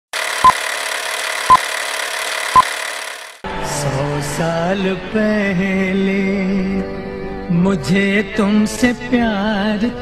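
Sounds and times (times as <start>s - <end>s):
song with singing voice: 3.5s - 10.0s.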